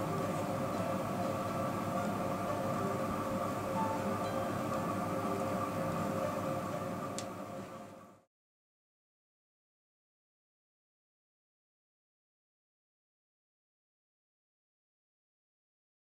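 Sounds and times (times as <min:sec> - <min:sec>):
soft chime-like music: 0:03.7 - 0:05.4.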